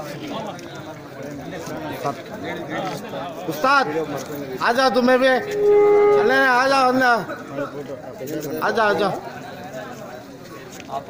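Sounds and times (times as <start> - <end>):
steady held tone: 4.9 - 7.1
person shouting drawn-out calls: 5.2 - 6.8.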